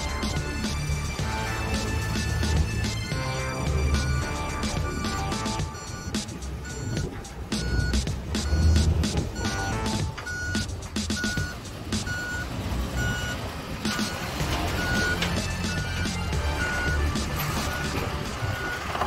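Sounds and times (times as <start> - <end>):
backup alarm beeping: 0.0 - 19.0
diesel engine running: 0.0 - 19.0.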